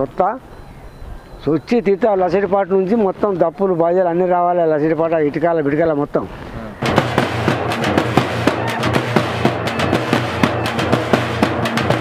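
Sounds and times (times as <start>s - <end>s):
frame drums in fast rhythm: 6.8s - 12.0s.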